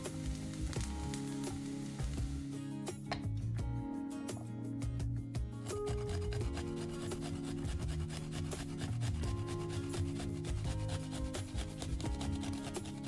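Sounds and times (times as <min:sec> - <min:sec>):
background music: 0:00.0 - 0:13.0
garlic grating on metal grater: 0:05.7 - 0:13.0.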